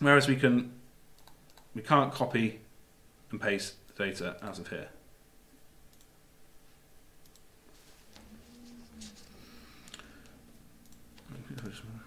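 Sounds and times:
computer mouse click: 0:01.2 - 0:01.7, 0:05.9 - 0:06.1, 0:07.2 - 0:07.5, 0:09.8 - 0:11.8.

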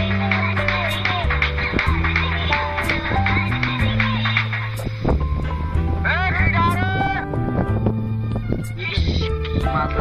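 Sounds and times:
instrumental backing with bass line: 0:00.0 - 0:10.0.

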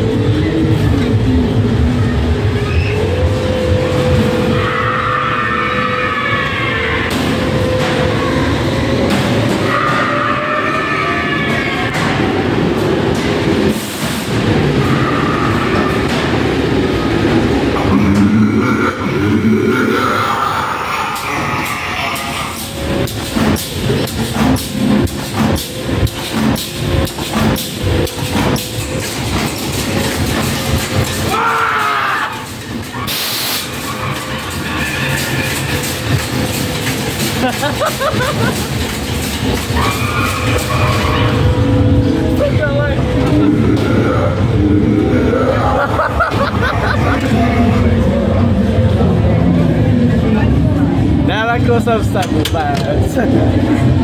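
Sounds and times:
eerie horror soundtrack drone: 0:00.0 - 0:54.0
ride car rumbling on track: 0:00.0 - 0:54.0.

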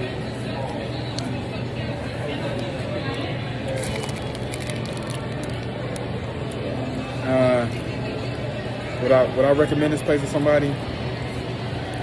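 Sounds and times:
diners chattering: 0:00.0 - 0:12.0.

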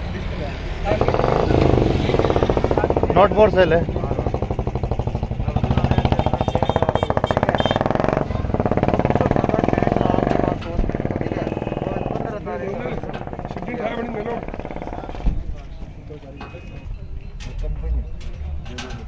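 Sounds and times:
engine chugging: 0:00.8 - 0:15.6.

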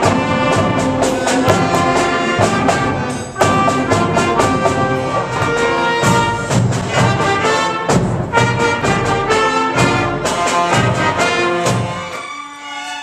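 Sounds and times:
concert band playing: 0:00.0 - 0:13.0
trumpets and trombones: 0:00.0 - 0:13.0.

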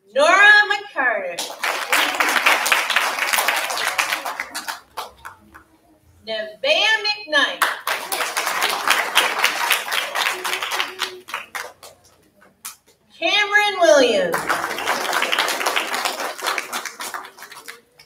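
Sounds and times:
audience applauding: 0:01.4 - 0:05.6, 0:07.6 - 0:12.1, 0:14.3 - 0:18.0.

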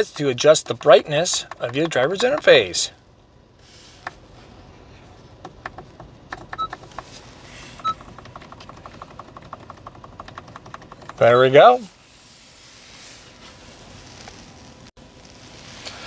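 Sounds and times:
fast even ticking: 0:07.8 - 0:11.6.

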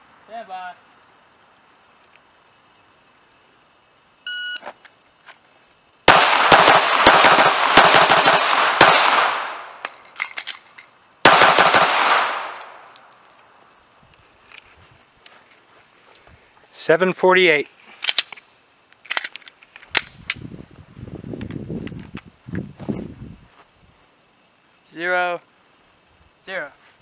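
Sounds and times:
shot timer beep: 0:04.3 - 0:04.6
pistol firing rapid shots: 0:06.1 - 0:09.7, 0:11.2 - 0:12.6.

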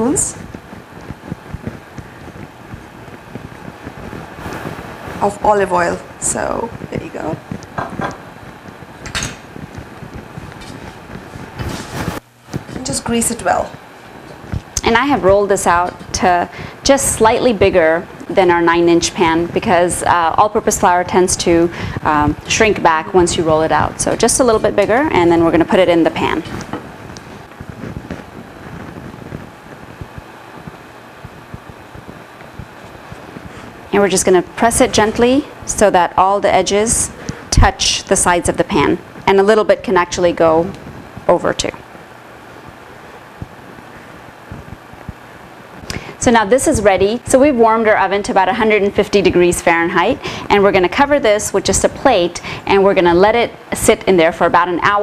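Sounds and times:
soft taps and rustles of dough: 0:26.4 - 0:33.8.

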